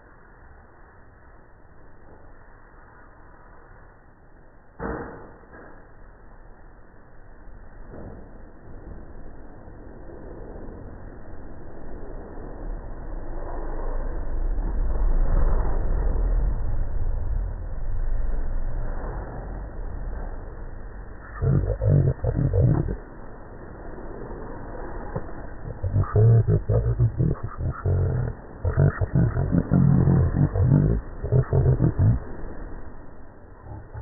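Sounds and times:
low rumble: 20.7 - 34.0.

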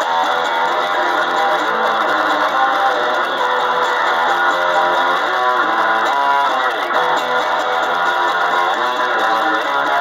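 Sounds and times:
electric bass through an amp: 0.0 - 10.0.

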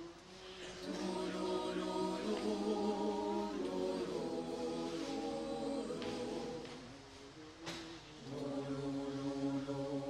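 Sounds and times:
mixed choir singing a cappella: 0.0 - 10.0
breath: 0.3 - 0.8.

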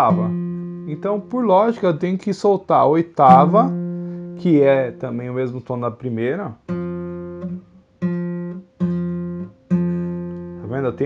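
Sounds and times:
classical guitar note plucked: 0.0 - 2.2, 3.2 - 5.4, 6.6 - 11.0.

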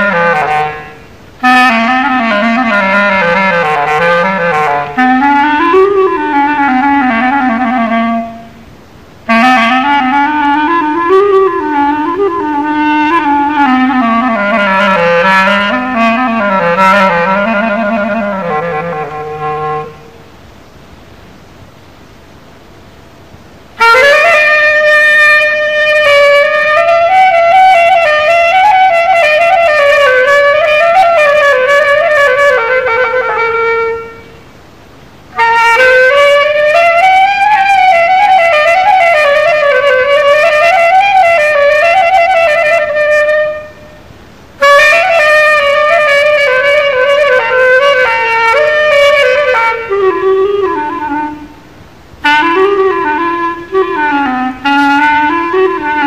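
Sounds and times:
solo melodic instrument improvising: 0.0 - 20.3, 23.7 - 34.6, 35.2 - 56.0.

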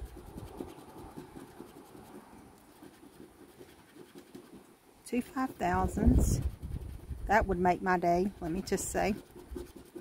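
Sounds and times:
coin scratching lottery ticket: 8.4 - 10.0.

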